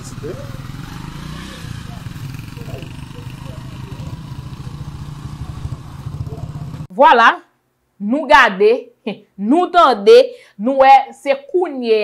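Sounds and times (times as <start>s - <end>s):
motorcycle engines puttering: 0.0s - 6.9s
faint voices: 1.4s - 6.9s.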